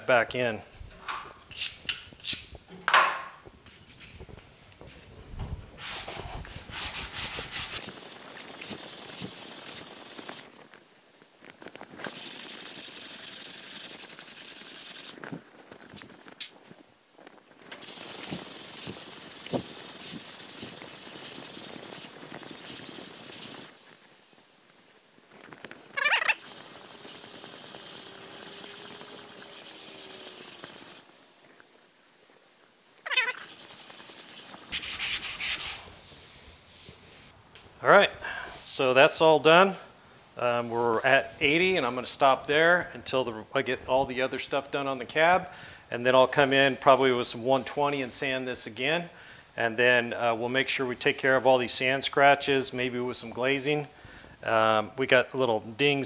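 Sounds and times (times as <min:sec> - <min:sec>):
sandpaper scraping on metal panel: 0:05.8 - 0:10.4, 0:12.0 - 0:15.2, 0:17.8 - 0:23.7, 0:26.0 - 0:31.0, 0:33.1 - 0:37.3.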